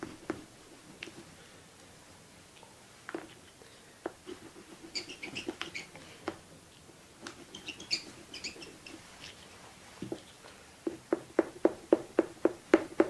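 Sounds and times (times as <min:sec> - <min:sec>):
pastel rubbing on paper: 0:04.2 - 0:05.9, 0:07.2 - 0:09.4.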